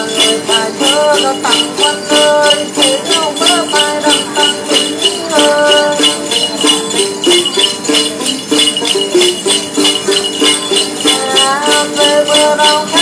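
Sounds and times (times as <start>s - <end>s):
jingle bells shaken: 0.0s - 13.0s
person singing: 0.0s - 13.0s
plucked lute melody: 0.0s - 13.0s.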